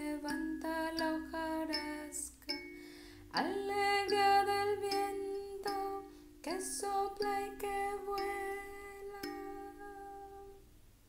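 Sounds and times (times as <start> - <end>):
woman singing: 0.0 - 2.6, 3.3 - 10.7.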